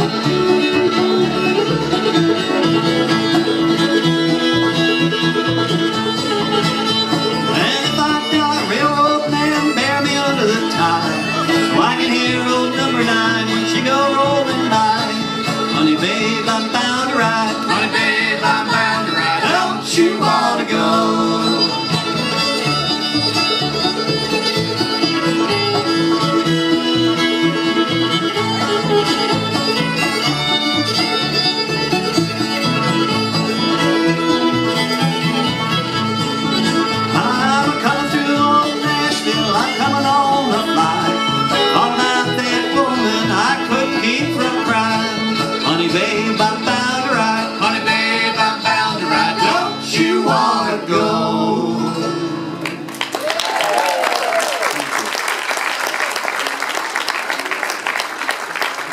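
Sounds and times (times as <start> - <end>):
banjo: 0.0 - 52.9
acoustic guitar: 0.0 - 53.1
upright bass: 0.0 - 55.0
fiddle: 0.0 - 58.9.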